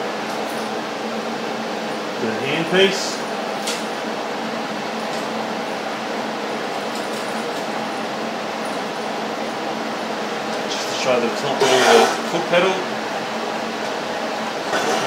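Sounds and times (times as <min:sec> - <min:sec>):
welder cooling fan whirring: 0:00.0 - 0:15.0.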